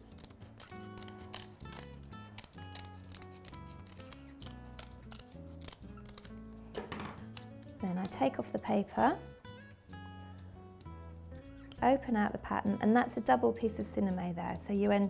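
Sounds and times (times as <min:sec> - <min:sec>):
scissors snipping: 0:00.0 - 0:06.4, 0:07.2 - 0:08.3
soft background music: 0:00.0 - 0:15.0.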